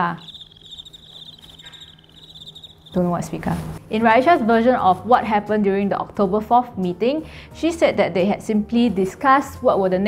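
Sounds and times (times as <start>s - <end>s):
cricket chirping: 0.0s - 3.4s.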